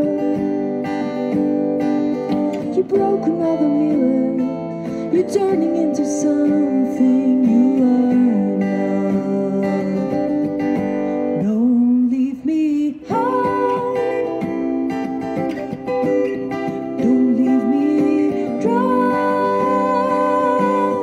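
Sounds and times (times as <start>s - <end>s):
strummed acoustic guitar: 0.0s - 21.0s
woman singing: 2.6s - 10.2s, 11.4s - 15.1s, 15.9s - 21.0s.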